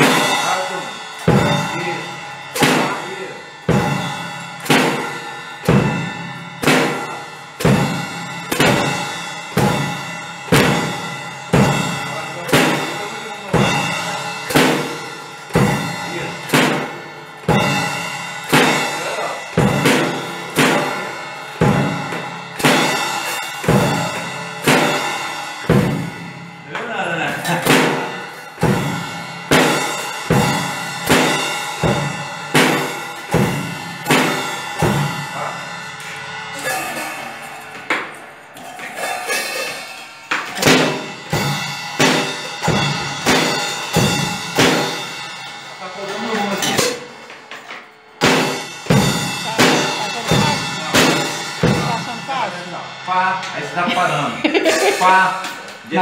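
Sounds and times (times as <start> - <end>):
single drum strokes ringing: 0.0 - 53.6.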